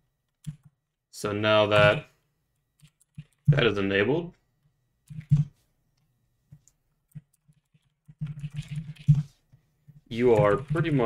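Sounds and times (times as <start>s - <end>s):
typing on computer keyboard: 0.3s - 1.0s, 2.8s - 3.6s, 7.1s - 9.3s.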